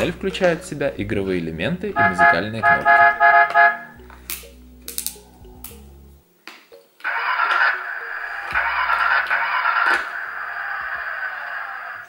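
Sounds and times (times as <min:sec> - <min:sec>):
loud electronic toy tune: 0:02.0 - 0:04.0.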